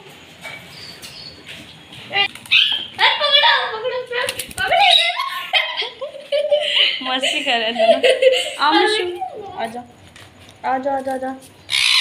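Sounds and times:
parakeet squawking: 0:02.2 - 0:03.7, 0:04.6 - 0:05.5, 0:11.6 - 0:12.0.

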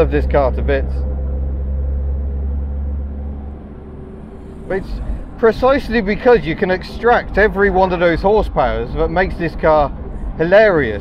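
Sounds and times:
car engine running: 0:00.0 - 0:11.0
road noise: 0:00.0 - 0:11.0.

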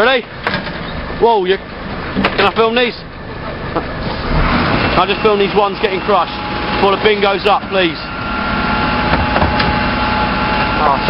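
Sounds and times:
truck engine and hydraulic lift: 0:00.0 - 0:11.0.

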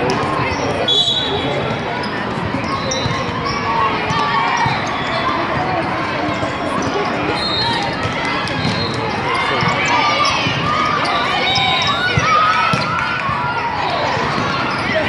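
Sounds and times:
voices chattering and calling out: 0:00.0 - 0:15.0.

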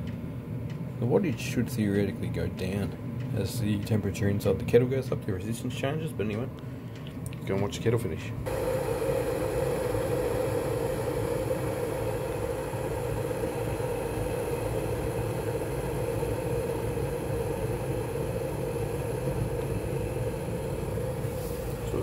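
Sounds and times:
kettle water boiling: 0:08.4 - 0:22.0.

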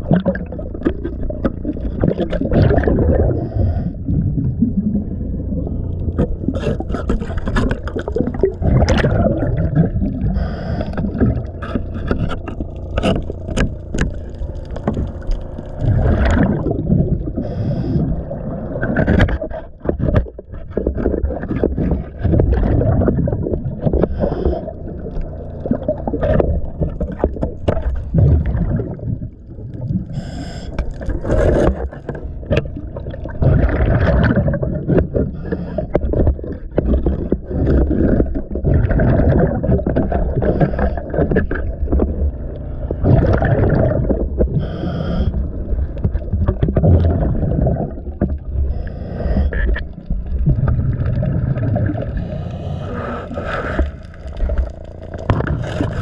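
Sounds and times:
pad scraping boat hull underwater: 0:00.0 - 0:04.0, 0:05.5 - 0:56.0
scuba exhaust bubbles gurgling: 0:00.0 - 0:56.0.

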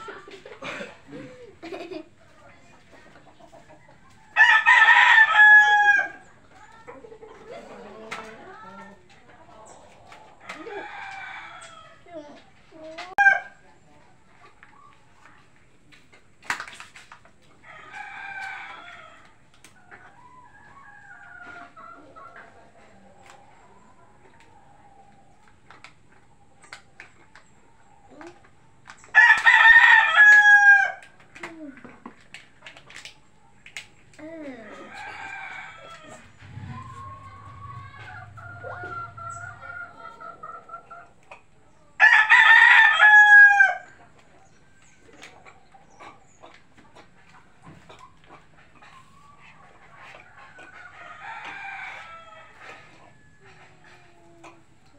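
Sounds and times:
roosters crowing: 0:03.7 - 0:06.4, 0:10.3 - 0:12.1, 0:17.6 - 0:22.2, 0:29.1 - 0:31.1, 0:34.5 - 0:44.0, 0:48.9 - 0:54.2.

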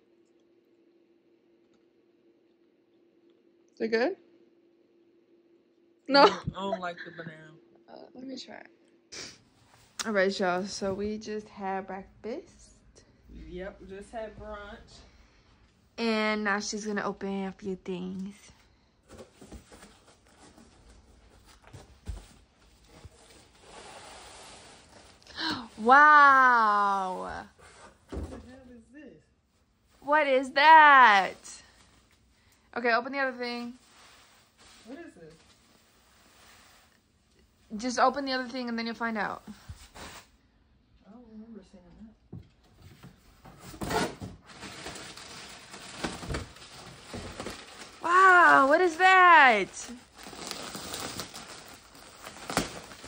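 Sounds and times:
cardboard rustling: 0:43.5 - 0:53.0
plastic crinkling: 0:44.5 - 0:53.0.

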